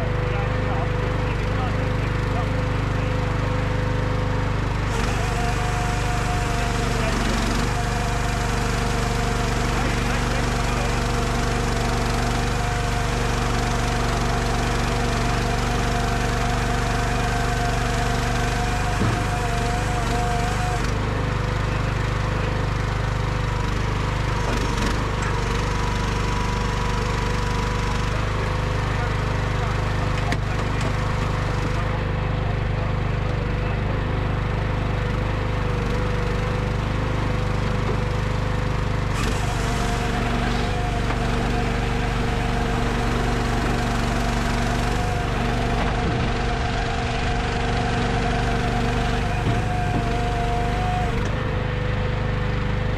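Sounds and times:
machine engine running: 0.0s - 52.9s.

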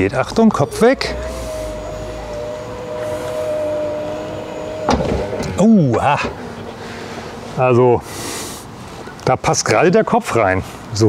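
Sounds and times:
electric tailgate motor humming: 0.0s - 8.8s.

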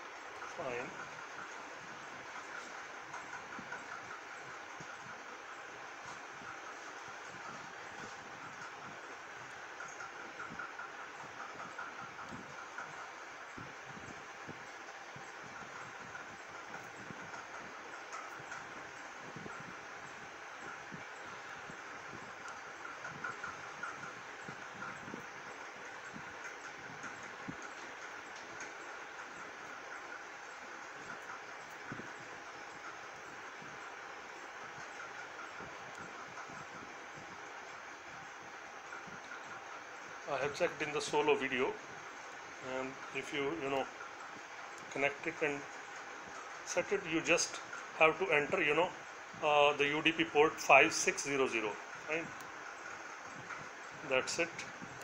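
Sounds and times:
faint constant tone: 0.0s - 55.0s
steady background noise: 0.0s - 55.0s.

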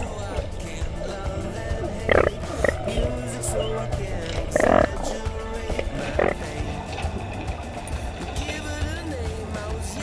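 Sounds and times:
whale moans bending in pitch: 0.0s - 6.6s
whale grunt: 0.0s - 6.7s
steady underwater rumble: 0.0s - 10.0s.

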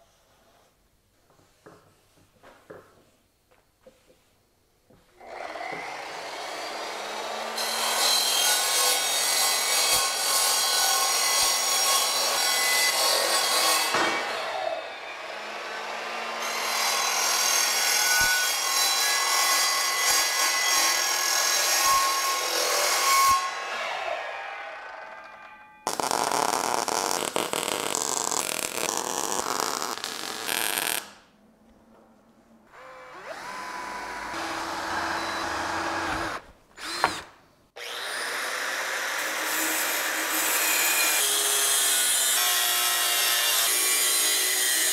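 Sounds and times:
mitre saw cutting metal tubing: 5.2s - 25.0s, 32.8s - 44.9s
drill running: 33.1s - 39.0s.

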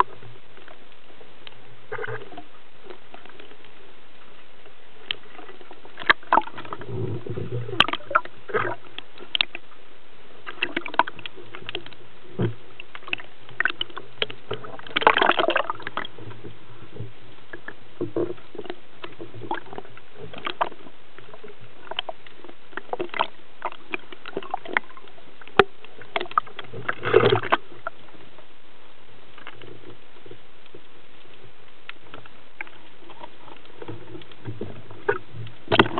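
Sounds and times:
sharp underwater clicks and knocks: 5.0s - 9.6s, 10.4s - 28.1s, 29.4s - 35.9s.

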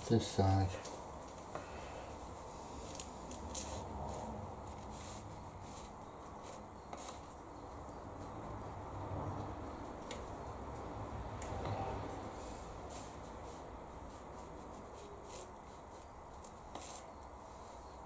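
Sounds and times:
brush working paint in palette: 2.2s - 8.5s, 11.9s - 18.0s.

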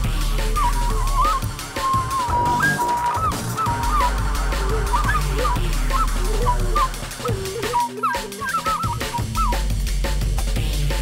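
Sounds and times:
drums: 0.0s - 11.0s
honking wind instrument: 0.2s - 9.7s.

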